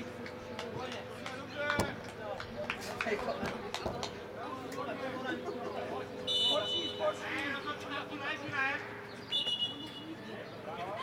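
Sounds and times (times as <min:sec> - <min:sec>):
referee's whistle blast: 0:06.3 - 0:07.1, 0:09.3 - 0:09.9.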